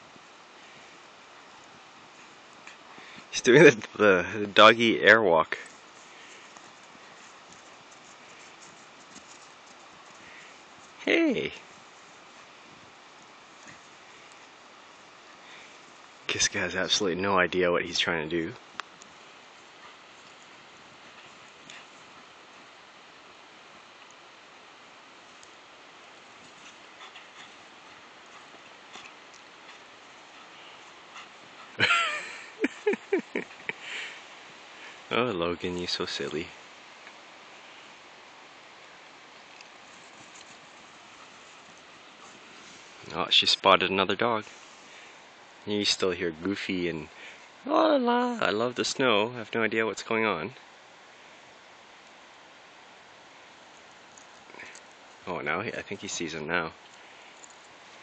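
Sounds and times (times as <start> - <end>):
faint outdoor hiss: 0.0 - 58.0.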